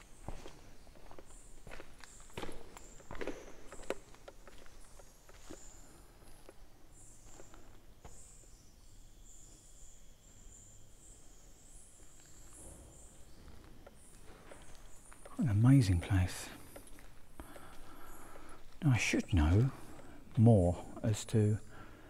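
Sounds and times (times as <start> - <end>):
footsteps crunching on gritty floor: 0.0 - 5.9, 12.1 - 20.5
faint high-pitched chirping: 0.0 - 16.8.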